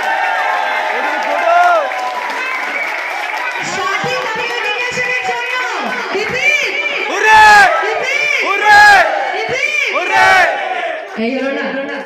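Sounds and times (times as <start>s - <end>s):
crowd shouting in rhythm: 5.5s - 11.2s.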